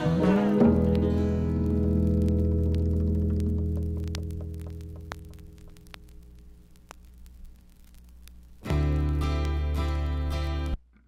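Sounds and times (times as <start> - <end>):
record surface hum: 0.0 - 11.0
vinyl clicks and pops: 0.4 - 11.0
soft-rock song closing chord: 8.6 - 10.8.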